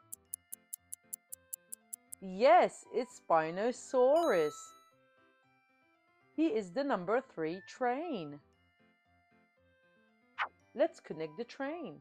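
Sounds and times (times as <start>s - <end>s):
clock ticking: 0.0s - 2.2s
soft background music: 0.0s - 12.0s.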